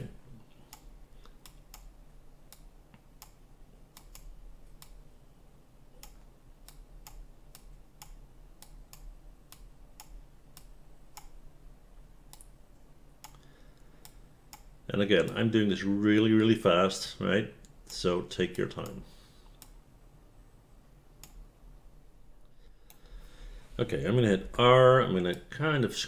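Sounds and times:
low steady hum: 0:00.0 - 0:26.0
computer mouse clicking: 0:00.7 - 0:05.0, 0:06.0 - 0:11.4, 0:12.3 - 0:12.6, 0:13.2 - 0:15.4, 0:18.8 - 0:19.8, 0:21.2 - 0:21.4.

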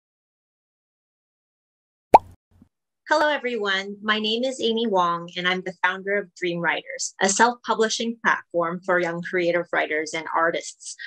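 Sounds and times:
plop with upward pitch glide: 0:02.1 - 0:02.3.

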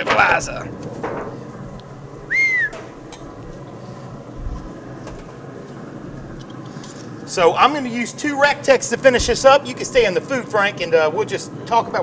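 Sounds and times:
short whistled note: 0:02.3 - 0:02.8.

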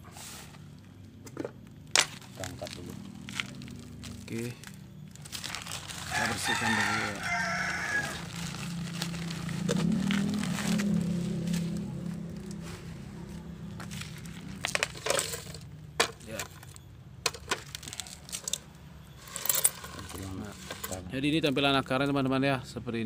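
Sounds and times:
clicks and rustles of plastic sheet: 0:02.0 - 0:06.9
rooster crowing: 0:06.0 - 0:11.2
low hum: 0:07.1 - 0:21.2.

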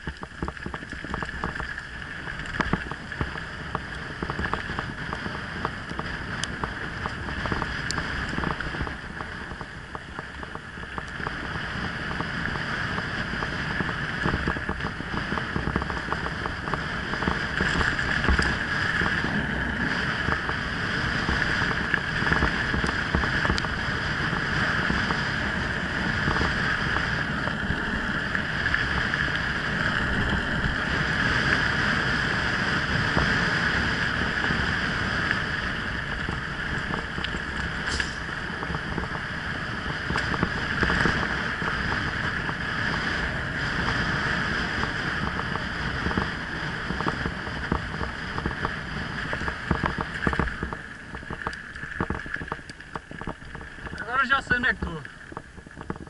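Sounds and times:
bike rattles and knocks: 0:00.0 - 0:11.5, 0:12.9 - 0:31.8, 0:32.9 - 0:43.2, 0:44.8 - 0:54.4
wind rush over microphone: 0:00.0 - 0:56.0.

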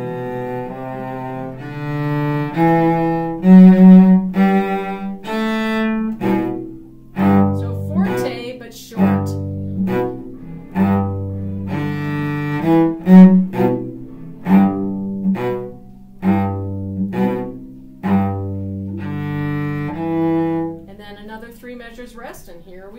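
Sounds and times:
solo bowed cello: 0:00.0 - 0:21.2.

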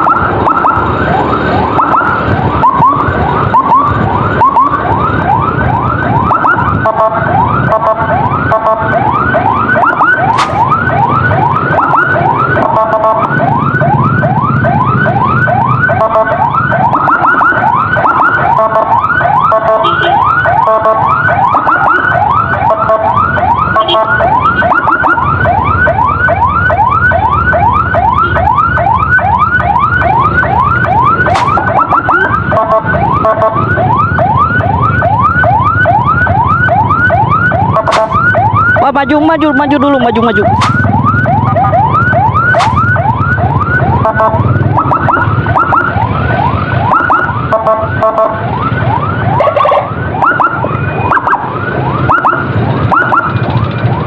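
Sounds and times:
emergency siren yelping: 0:00.0 - 0:54.0
traffic engines rumbling: 0:00.0 - 0:54.0.

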